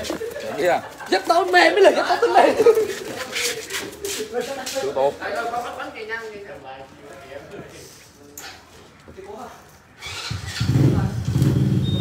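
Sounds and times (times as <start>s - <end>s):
engine starting and rumbling: 10.0s - 12.0s
faint high beep: 11.8s - 12.0s.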